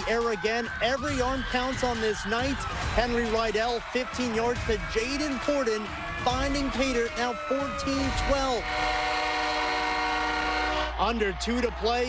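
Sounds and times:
horn sounding a chord: 0:00.0 - 0:11.3.

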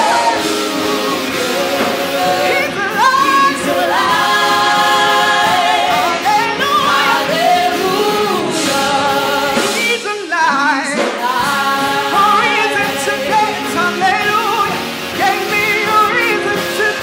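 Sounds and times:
gospel group singing in harmony: 0:00.0 - 0:17.0.

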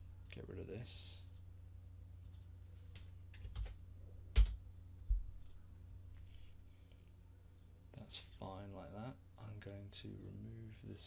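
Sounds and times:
steady low hum: 0:00.0 - 0:11.0
computer mouse and keyboard clicks: 0:02.2 - 0:03.8.

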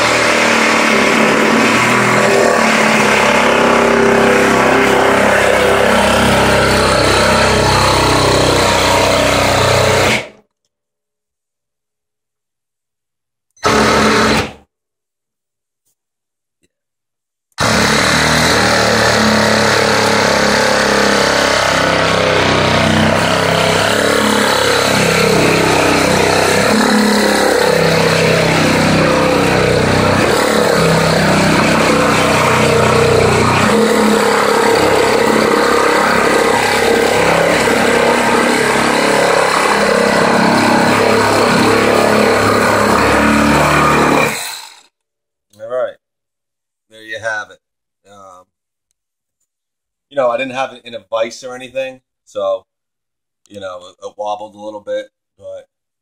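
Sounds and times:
board vibrating against blade: 0:00.0 - 0:10.4, 0:13.6 - 0:14.7, 0:17.6 - 0:45.0
reciprocating saw cutting wood: 0:00.0 - 0:10.4, 0:13.6 - 0:14.6, 0:17.6 - 0:45.0.

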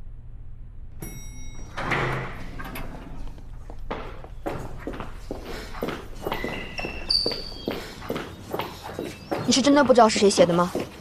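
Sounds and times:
footsteps walking briskly: 0:03.2 - 0:11.0.

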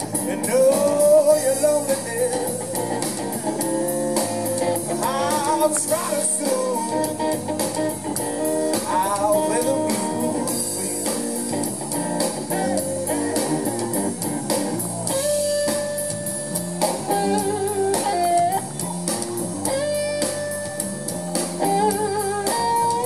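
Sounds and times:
drum kit: 0:00.0 - 0:23.0
electric blues guitar solo: 0:00.0 - 0:23.0.

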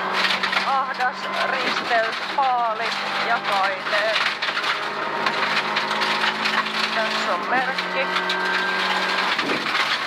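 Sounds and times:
car engine: 0:00.0 - 0:10.0
gravel crackling against car underbody: 0:00.0 - 0:10.0.

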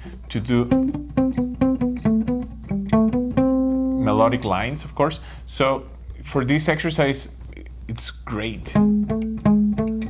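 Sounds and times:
palm-muted acoustic guitar notes: 0:00.0 - 0:04.7, 0:08.6 - 0:10.0.

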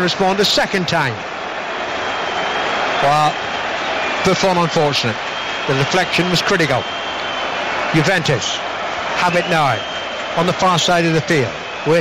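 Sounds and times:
stadium crowd roar: 0:00.0 - 0:12.0.

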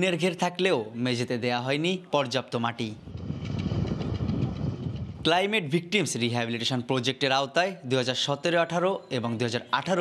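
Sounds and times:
uneven low rumbling: 0:03.0 - 0:05.4.

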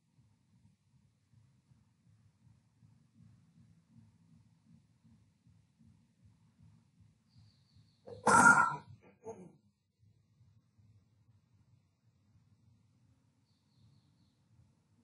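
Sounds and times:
faint low hum: 0:00.0 - 0:15.0
person's short vocal noise: 0:08.1 - 0:09.5.

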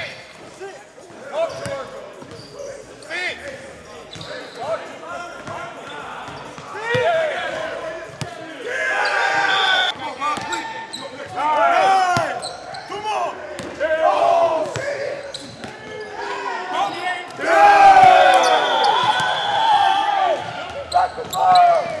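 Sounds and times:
sneakers squeaking: 0:00.0 - 0:22.0.

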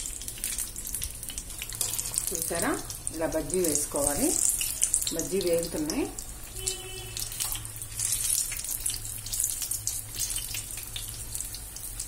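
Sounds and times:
chillies deep-frying in oil: 0:00.0 - 0:12.0.

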